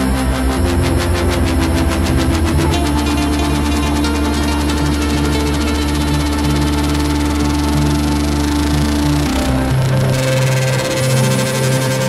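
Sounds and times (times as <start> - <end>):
electronic trance music: 0.0 - 12.0.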